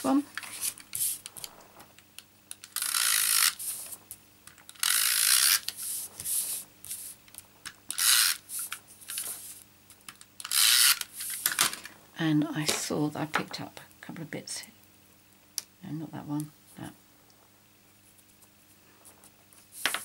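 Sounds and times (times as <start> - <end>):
hands rubbing paper: 5.7 - 7.2.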